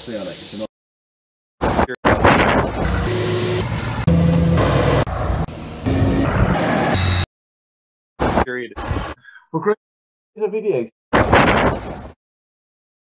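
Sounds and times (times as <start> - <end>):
tractor engine: 2.9 - 6.4.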